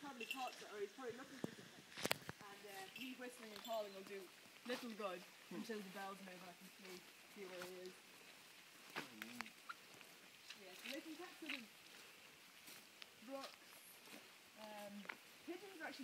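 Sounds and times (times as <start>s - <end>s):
quiet indistinct talking: 8.9s - 12.1s.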